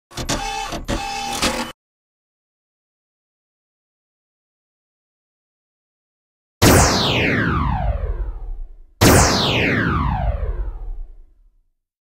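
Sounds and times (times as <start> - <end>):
mechanical whirring and clattering: 0.1 - 1.8.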